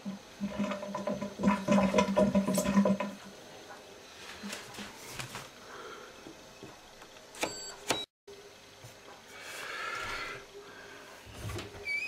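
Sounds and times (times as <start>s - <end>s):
water rushing through washing machine: 0.0s - 3.4s.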